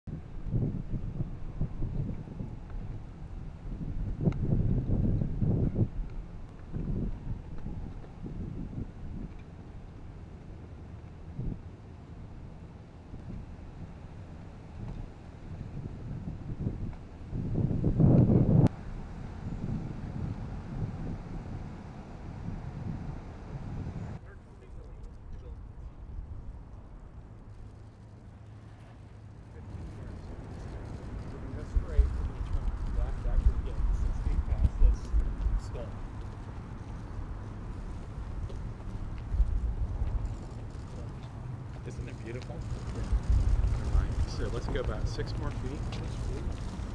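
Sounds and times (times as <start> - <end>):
wind buffeting microphone: 0.1 - 27.8, 29.2 - 46.9
low rumble of vehicles: 0.1 - 46.9.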